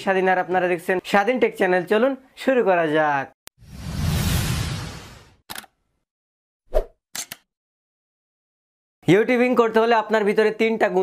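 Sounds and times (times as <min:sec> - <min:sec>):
whoosh: 0:03.6 - 0:05.4.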